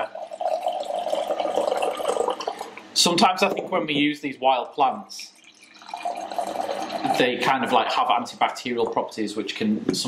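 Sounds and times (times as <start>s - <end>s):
beer glugging into glass: 0.0s - 9.2s.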